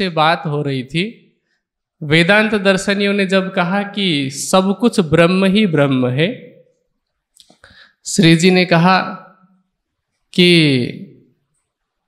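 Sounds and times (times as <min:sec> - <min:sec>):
man speaking: 0:00.0 - 0:01.3, 0:02.0 - 0:06.7, 0:08.0 - 0:09.4, 0:10.3 - 0:11.2.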